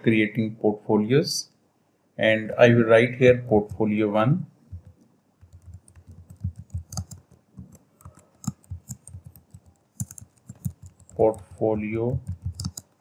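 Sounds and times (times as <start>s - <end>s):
computer keyboard typing: 4.7s - 13.0s.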